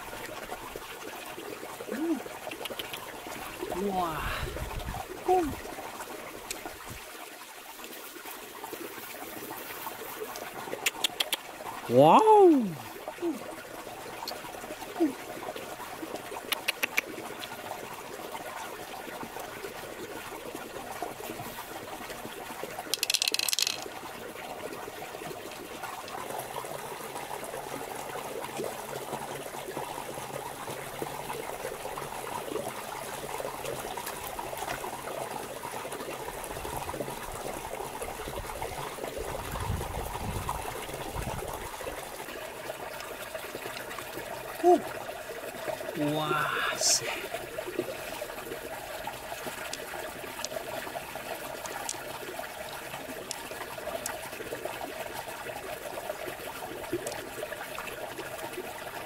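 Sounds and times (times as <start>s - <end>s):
water trickling: 0.0s - 59.0s
sharp clicks: 2.5s - 3.0s.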